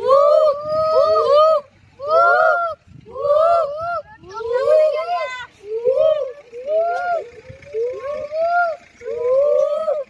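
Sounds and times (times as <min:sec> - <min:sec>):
children imitating monkey cries: 0:00.0 - 0:10.0.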